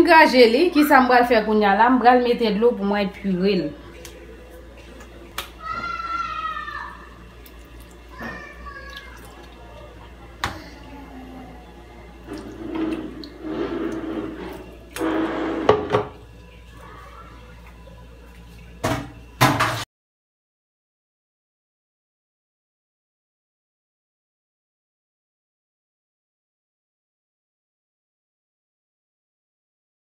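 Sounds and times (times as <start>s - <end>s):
water pouring from cup: 7.4s - 10.8s, 12.2s - 16.7s.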